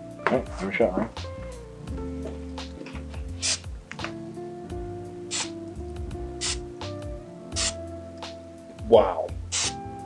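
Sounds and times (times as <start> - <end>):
background music: 0.0 - 10.0
aerosol spray hisses: 3.4 - 3.7, 5.3 - 5.6, 6.4 - 6.7, 7.5 - 7.9, 9.5 - 9.8.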